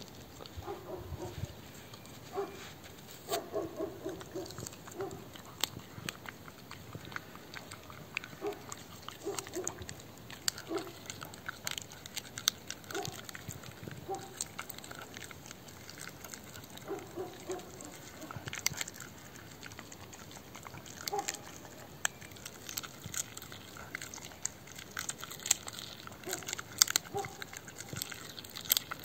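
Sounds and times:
dog growling: 3.3 - 29.0.

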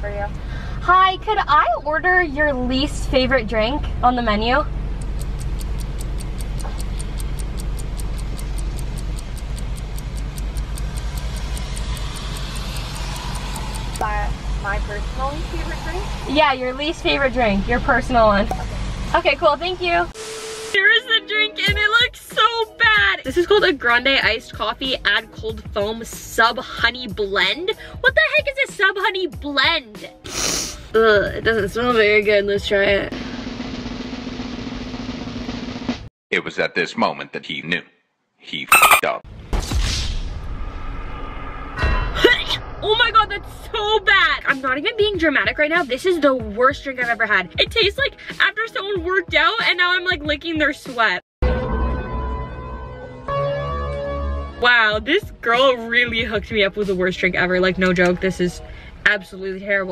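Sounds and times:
low hum inside car: 0.0 - 19.8
clock ticking: 5.0 - 14.0
steady low tone: 8.3 - 18.8.

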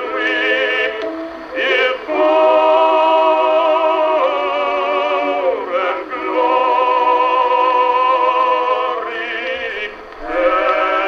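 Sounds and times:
old record of singing with orchestra: 0.0 - 11.0.

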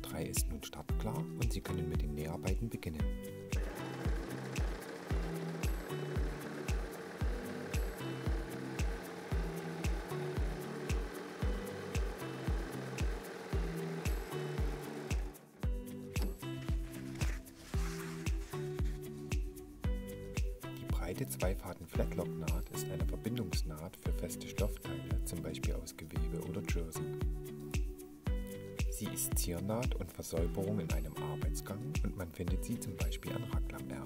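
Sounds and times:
music with a steady beat: 0.0 - 34.0
overlock sewing machine running: 3.6 - 15.6.

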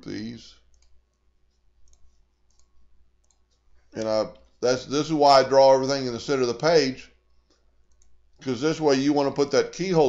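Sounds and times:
computer mouse clicks: 0.6 - 4.6, 7.4 - 8.2.

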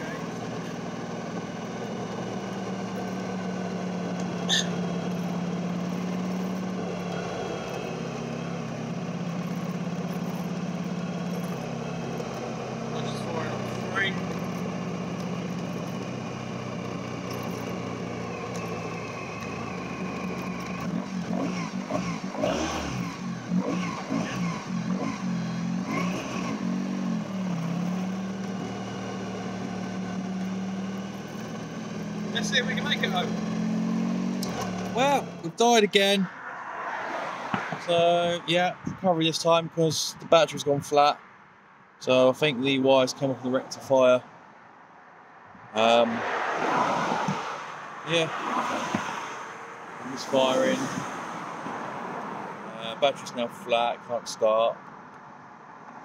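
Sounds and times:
motorcycle engine running: 0.0 - 35.6, 50.0 - 50.9.

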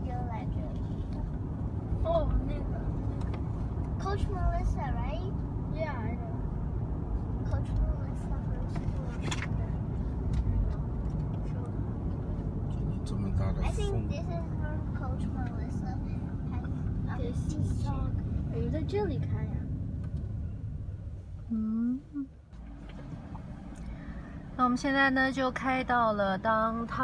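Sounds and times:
car road and engine rumble: 0.0 - 27.0.

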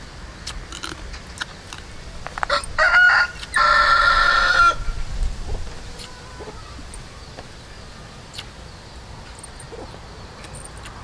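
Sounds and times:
rooster crowing: 2.5 - 4.9.

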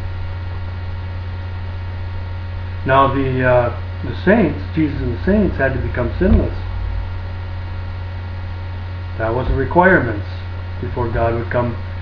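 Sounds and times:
electrical mains hum: 0.0 - 12.0
man speaking: 2.9 - 6.7, 9.2 - 11.8.

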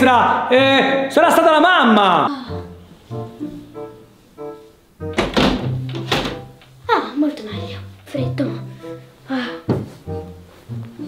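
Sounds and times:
background music: 0.0 - 11.0
wooden window frame thunks: 5.1 - 6.6.

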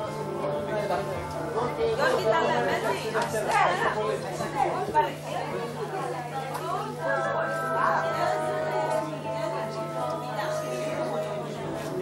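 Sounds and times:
people chatting in a large hall: 0.0 - 12.0.

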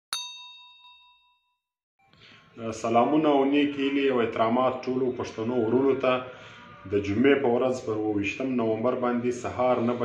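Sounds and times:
notification bell ding: 0.1 - 1.5.

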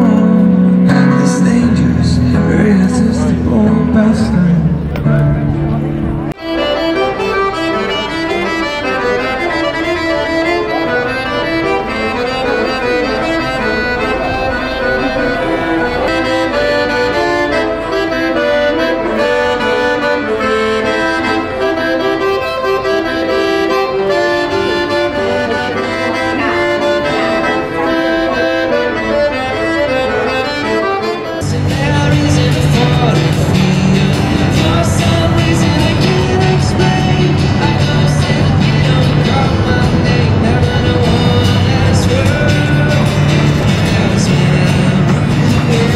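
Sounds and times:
solo accordion melody: 0.0 - 45.9
music with heavy bass: 31.4 - 45.9.

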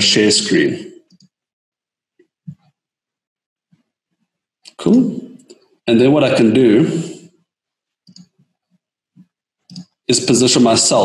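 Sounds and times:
computer mouse clicks: 1.1 - 1.4, 8.0 - 8.5, 9.2 - 10.0.

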